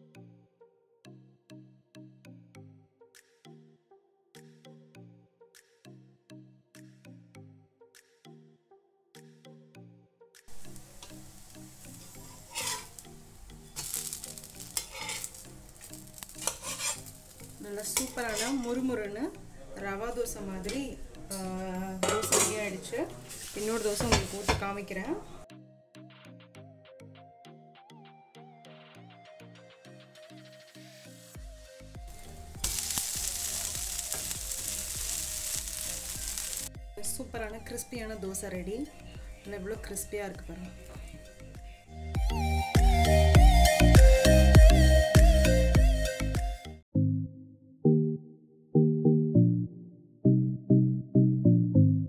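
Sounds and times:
background music with steady beat: 1.0 - 46.8
dosa sizzling on a hot pan: 10.6 - 18.7, 32.1 - 36.7
metal spatula scraping pan: 11.9 - 13.0, 13.7 - 18.9, 22.0 - 24.6.

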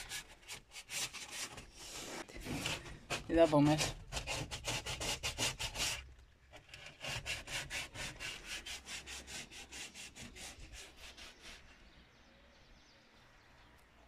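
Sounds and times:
hand sanding strokes: 0.0 - 6.0, 6.8 - 11.9.

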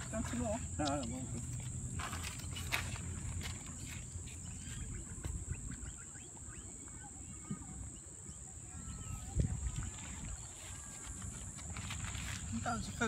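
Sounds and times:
kangaroo crunching grain: 0.0 - 5.2, 9.5 - 13.0.

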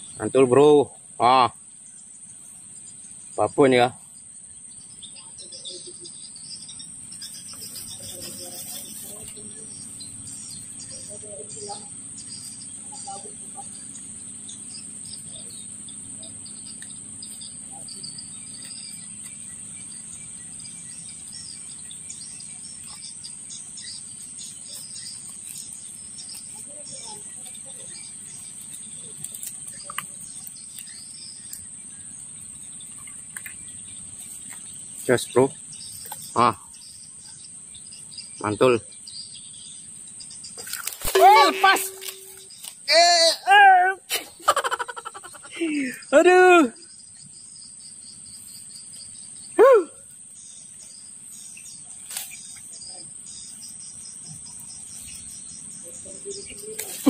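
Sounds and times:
insects droning: 0.0 - 57.0
bird chirps: 1.8 - 57.0.

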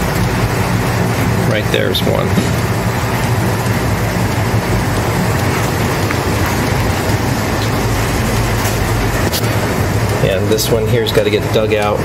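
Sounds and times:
low mechanical hum: 0.0 - 12.0
steady rushing noise: 0.0 - 12.0.

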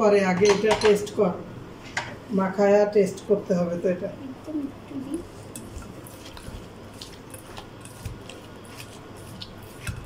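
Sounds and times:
low room hum: 0.0 - 10.0
wet food squelching: 4.8 - 10.0.

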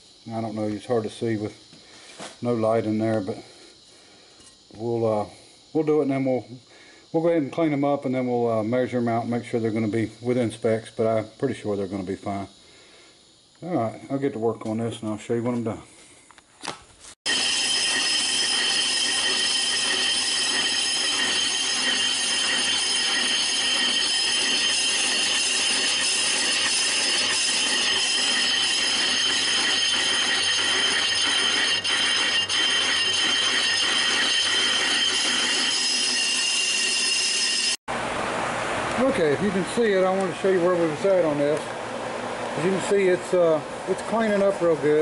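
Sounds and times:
lathe cutting bit squealing: 17.3 - 37.8
lathe machine running: 17.3 - 45.0.

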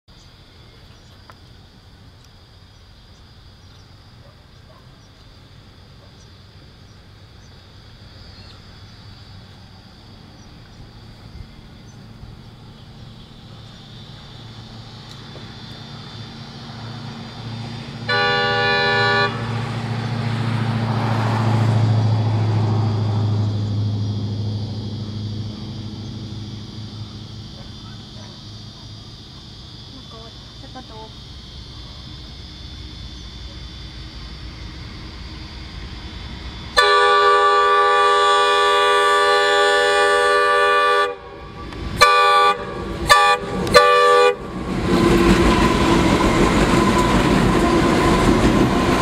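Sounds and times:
insects chirring: 0.1 - 49.0
diesel locomotive rumble: 0.8 - 49.0
locomotive horn blast: 17.9 - 19.8, 36.7 - 45.3.

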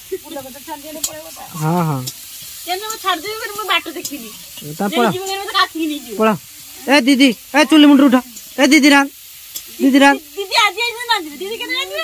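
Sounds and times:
women talking: 0.0 - 2.0, 2.6 - 6.4, 9.8 - 12.0
food sizzling in oil: 0.0 - 12.0.

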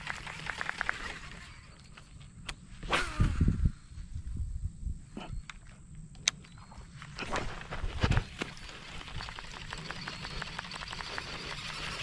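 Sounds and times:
spinning reel spool whir: 8.4 - 12.0.

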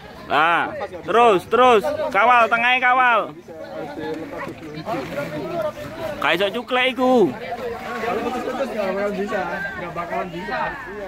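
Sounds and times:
people chattering: 0.0 - 11.0.

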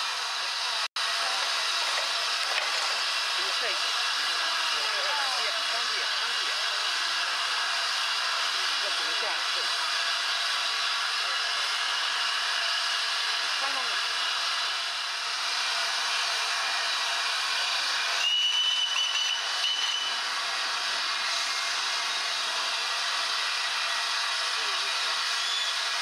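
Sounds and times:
steam hissing: 0.0 - 26.0
steam locomotive whistle: 16.4 - 20.3, 24.7 - 26.0.

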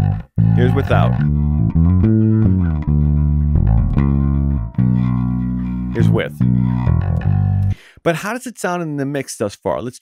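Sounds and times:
bass guitar held notes: 0.0 - 7.8.

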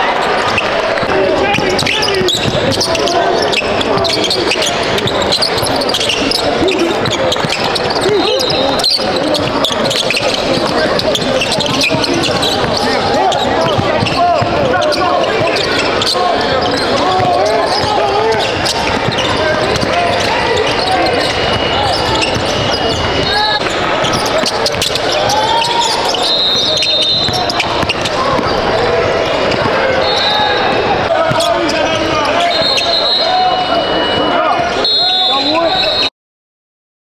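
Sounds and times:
many voices calling out: 0.0 - 36.0
basketball bouncing: 1.4 - 30.1, 30.7 - 32.8
sneaker squeaks on hardwood: 1.4 - 34.3.

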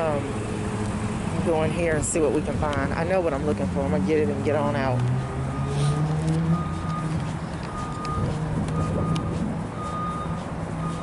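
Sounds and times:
engine humming: 0.0 - 11.0
reversing alarm beeping: 5.4 - 11.0.

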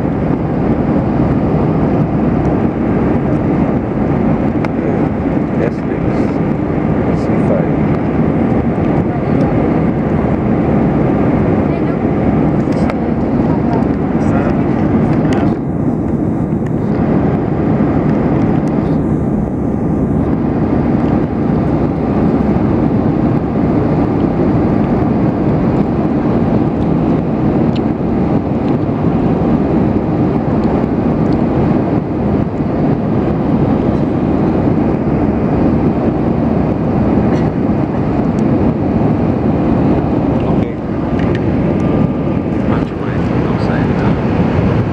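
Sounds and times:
jet airliner cabin roar: 0.0 - 44.9.

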